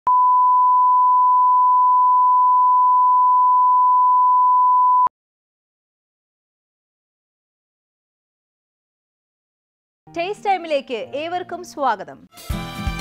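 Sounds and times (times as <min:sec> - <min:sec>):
steady pure beep tone: 0:00.1 - 0:05.1.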